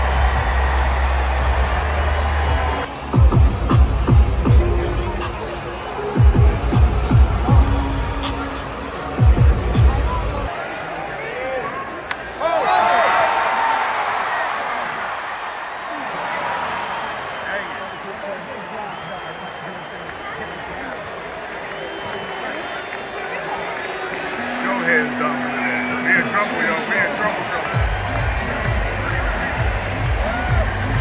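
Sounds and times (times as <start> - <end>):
crowd cheering and shouting: 0.0 - 31.0
music with heavy bass beat: 0.3 - 10.5, 27.8 - 31.0.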